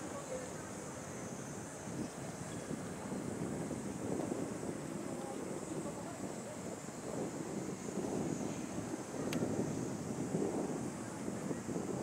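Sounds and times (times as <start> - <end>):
steady high hiss: 0.0 - 12.0
wind buffeting microphone: 0.0 - 12.0
faint click: 9.2 - 9.5.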